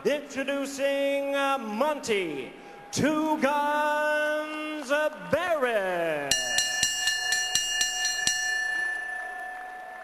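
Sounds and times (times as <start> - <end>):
boxing ring bell ringing: 6.3 - 10.0.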